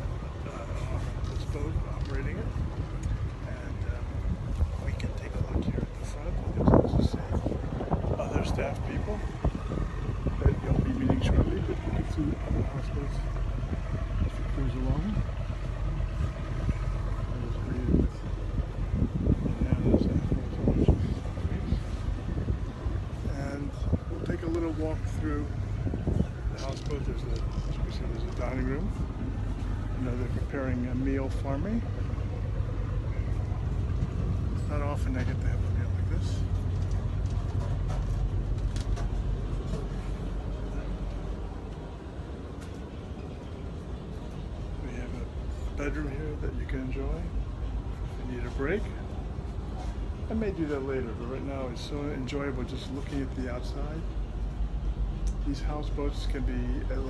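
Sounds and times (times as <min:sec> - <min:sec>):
boat engine droning: 0:00.0 - 0:57.0.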